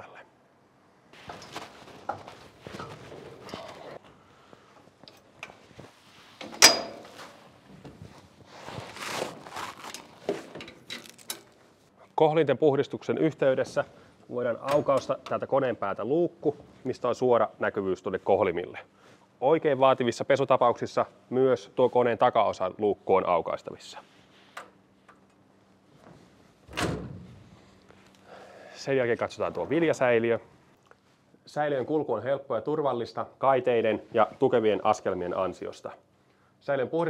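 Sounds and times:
air hose rustle: 5.6s - 11.8s.

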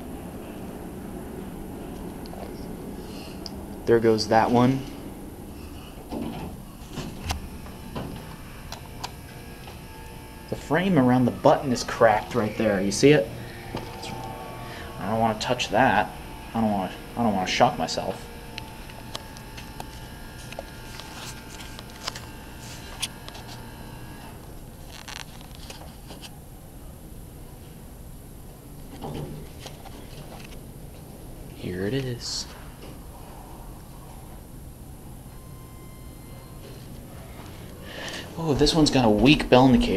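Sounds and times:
elevator doors closing: 0.0s - 19.6s, 34.0s - 39.9s
machine hum: 0.0s - 39.9s
faint high tone: 11.0s - 17.5s.

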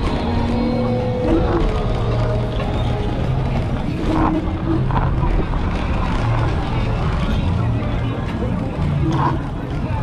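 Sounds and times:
people talking: 0.0s - 10.0s
scooter rolling noise: 0.0s - 10.0s
wind rumble on microphone: 0.0s - 10.0s.

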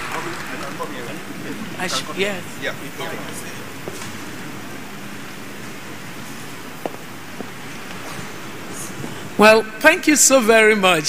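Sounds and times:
audience applauding: 0.0s - 2.1s.

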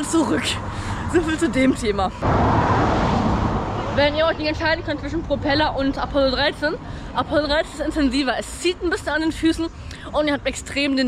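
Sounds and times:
car passing close by: 2.2s - 4.3s.

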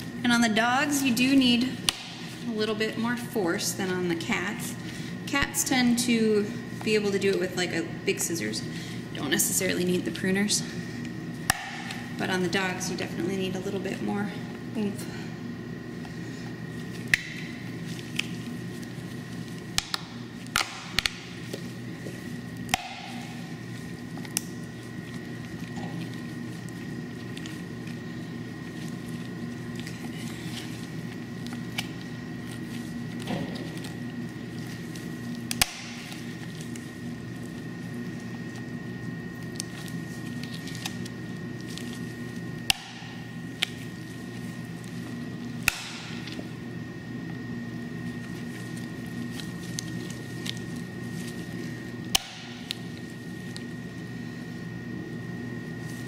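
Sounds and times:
pruning shears snapping through bone: 35.5s - 36.0s, 42.6s - 43.7s, 45.6s - 46.1s, 52.1s - 52.6s.

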